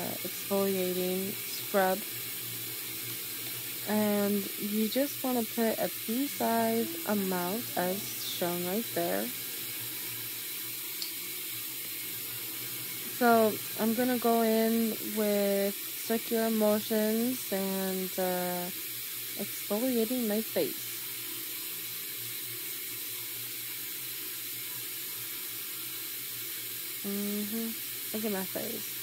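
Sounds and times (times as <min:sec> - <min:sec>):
faucet running into sink: 0:00.0 - 0:29.0
tap water running into sink: 0:21.0 - 0:27.0.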